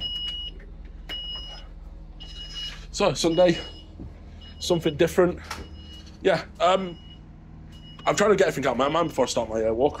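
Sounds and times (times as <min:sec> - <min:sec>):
high warning beeps: 0:00.0 - 0:09.2
diesel engine idling: 0:00.0 - 0:10.0.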